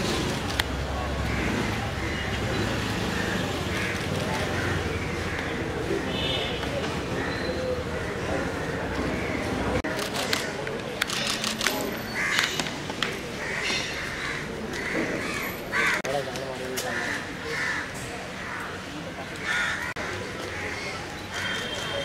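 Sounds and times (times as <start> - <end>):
murmur of crowd talking: 0.0 - 22.0
crows cawing: 12.2 - 12.5, 13.4 - 16.1, 16.9 - 18.7, 19.4 - 21.6.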